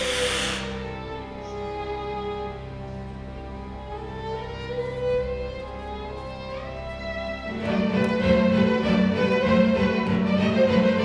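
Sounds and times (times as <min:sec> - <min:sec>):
hissing burst: 0:00.0 - 0:00.9
low drone: 0:00.0 - 0:07.3
bowed string music: 0:00.0 - 0:11.0.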